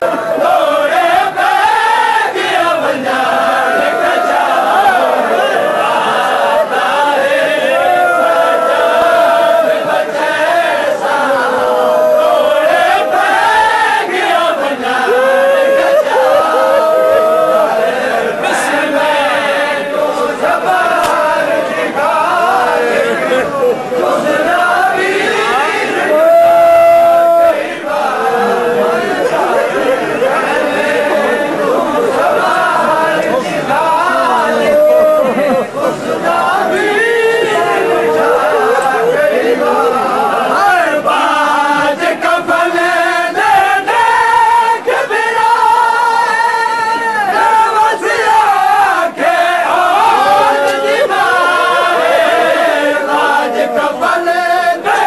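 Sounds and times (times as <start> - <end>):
crowd voices: 0.0 - 55.0
men chanting a slow lament: 0.0 - 55.0.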